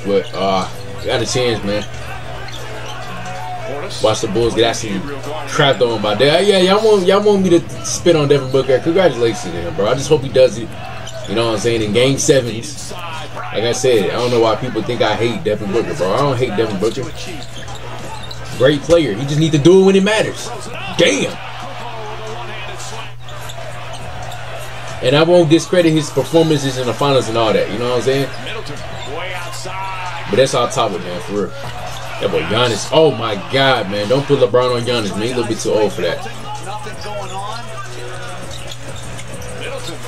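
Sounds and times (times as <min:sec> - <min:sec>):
commentator speech: 0:00.0 - 0:23.3, 0:24.6 - 0:40.0
arena noise: 0:00.0 - 0:40.0.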